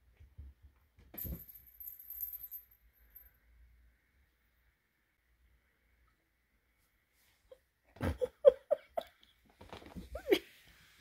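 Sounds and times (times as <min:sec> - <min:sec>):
small metal object jingling: 0:01.2 - 0:03.4.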